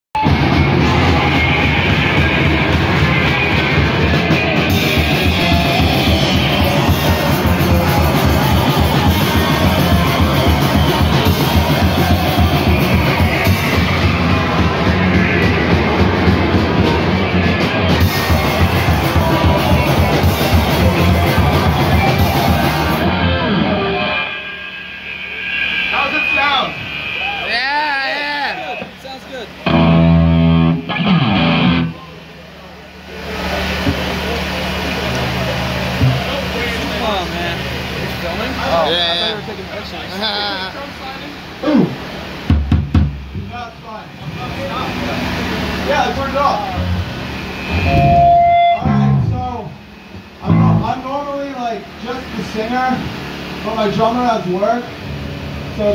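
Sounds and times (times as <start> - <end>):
punk band playing loudly: 0.2 - 32.3, 33.2 - 51.1
voices: 0.2 - 42.6, 43.3 - 55.9
loud amplified held note: 46.4 - 51.1.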